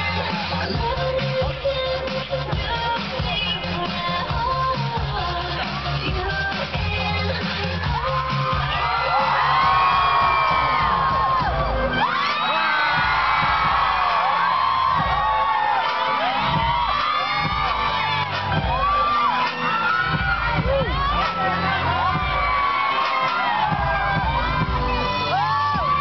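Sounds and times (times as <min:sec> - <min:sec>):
dance music over loudspeakers: 0:00.0 - 0:26.0
crowd whooping and cheering: 0:04.4 - 0:26.0.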